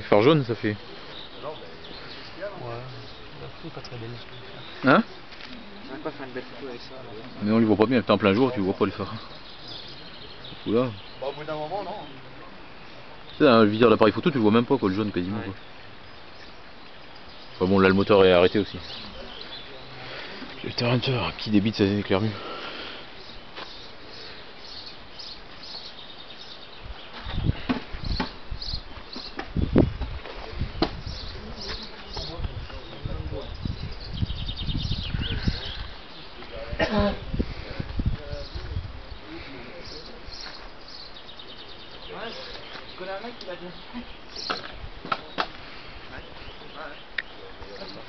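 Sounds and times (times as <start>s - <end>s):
people talking: 17.6s - 22.5s, 30.3s - 33.7s, 35.3s - 40.4s, 46.1s - 48.0s.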